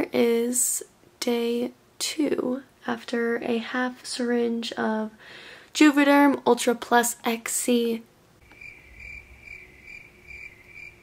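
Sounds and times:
cricket chirping: 8.4 - 11.0.

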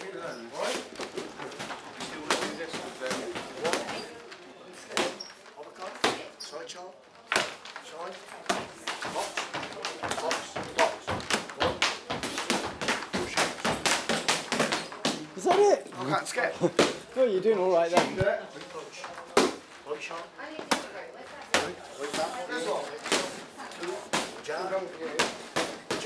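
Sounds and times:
boxing gloves slapping mitts: 7.3 - 15.7, 19.3 - 19.7, 20.6 - 26.0.

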